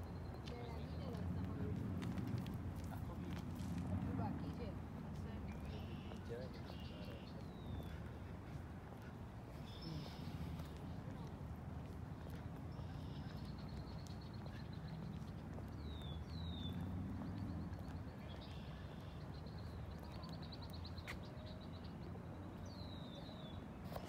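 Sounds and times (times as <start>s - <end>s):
small birds chirping: 4.2s - 24.0s.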